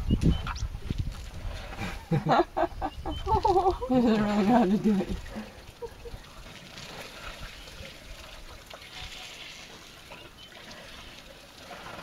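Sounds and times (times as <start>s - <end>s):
water trickling from trunks: 0.0s - 12.0s.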